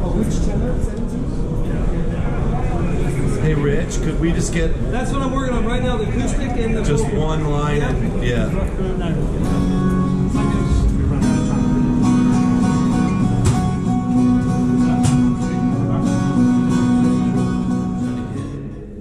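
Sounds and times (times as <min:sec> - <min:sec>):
strummed acoustic guitar music: 0:09.3 - 0:19.0.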